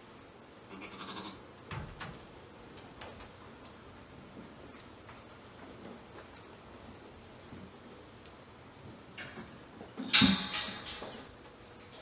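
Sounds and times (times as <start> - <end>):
sheep bleating: 0.7 - 1.4.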